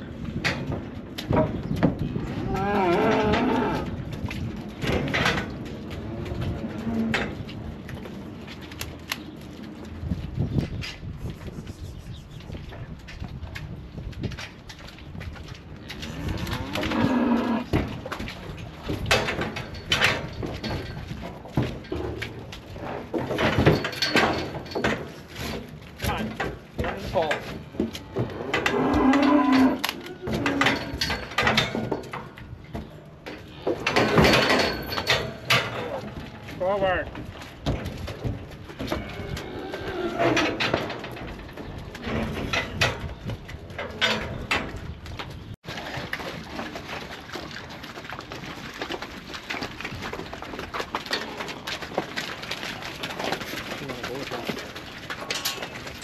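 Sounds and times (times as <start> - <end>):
cattle mooing: 2.2 - 3.9, 16.0 - 17.7, 28.0 - 30.7
steel gates knocking and rattling: 23.0 - 25.2, 33.6 - 36.2.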